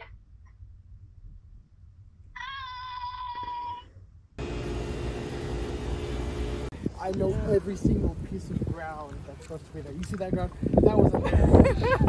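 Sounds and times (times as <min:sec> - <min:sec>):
high held tone: 0:04.4 - 0:07.5
kitchen machinery rush and hum: 0:04.4 - 0:07.7.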